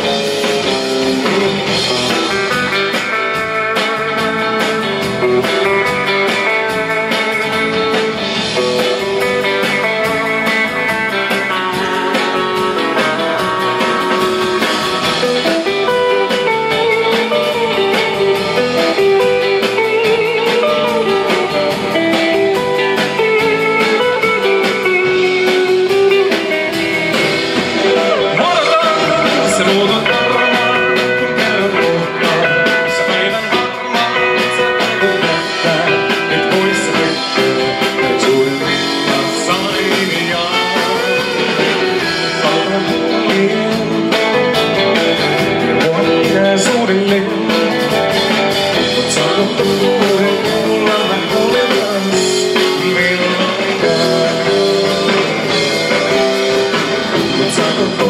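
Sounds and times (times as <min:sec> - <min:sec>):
drum kit: 0:00.0 - 0:58.0
electric guitars: 0:00.0 - 0:58.0.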